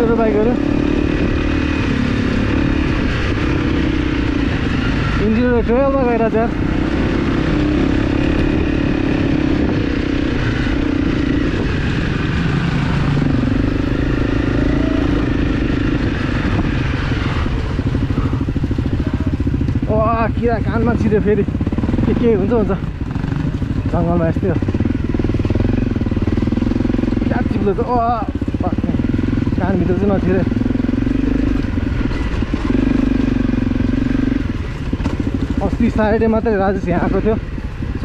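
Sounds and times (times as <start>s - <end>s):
dirt bike engine running: 0.0s - 38.0s.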